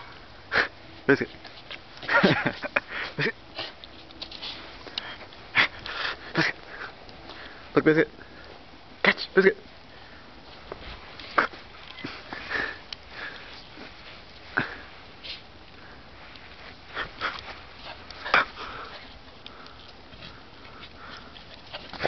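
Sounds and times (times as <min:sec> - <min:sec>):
dog sniffing and snuffling: 0:03.0 - 0:07.6, 0:10.5 - 0:22.0.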